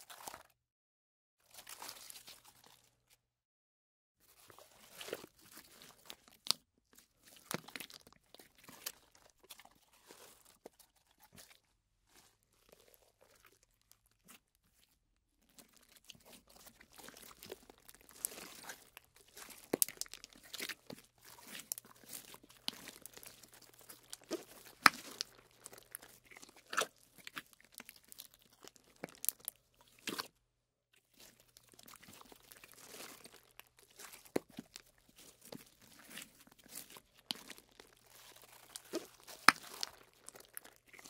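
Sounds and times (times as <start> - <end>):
slime squished by hand: 15.6 - 30.3, 31.2 - 41.0.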